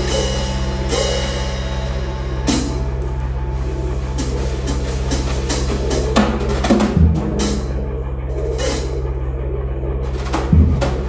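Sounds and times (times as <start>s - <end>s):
drum kit played loosely: 0.0s - 3.0s, 4.0s - 7.7s
heavy low drum hit: 0.0s - 8.0s, 10.0s - 11.0s
low hum: 0.0s - 11.0s.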